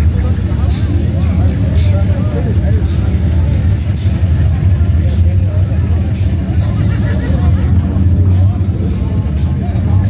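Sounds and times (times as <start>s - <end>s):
car engine low rumble: 0.0s - 10.0s
people talking faintly: 0.0s - 10.0s.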